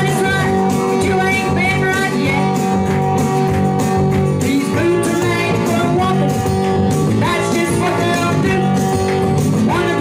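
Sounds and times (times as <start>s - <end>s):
woman singing into microphone: 0.0s - 2.6s
instrumental backing with guitar: 0.0s - 10.0s.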